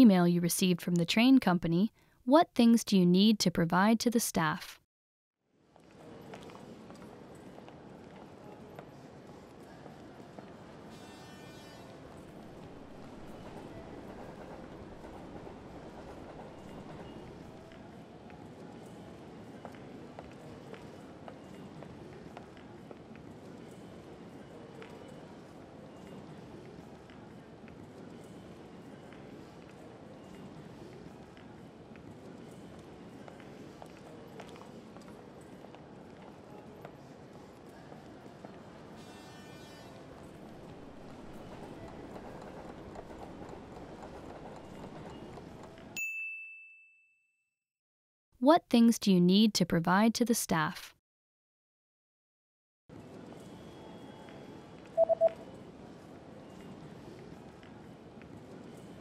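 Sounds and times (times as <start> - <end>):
train rumbling on rails: 12.0 - 17.8, 40.2 - 46.0
countdown timer clicks: 55.0 - 55.4.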